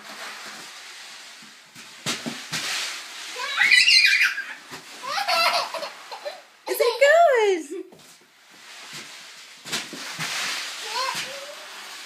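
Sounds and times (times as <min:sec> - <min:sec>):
toddler squealing: 0:03.4 - 0:05.2.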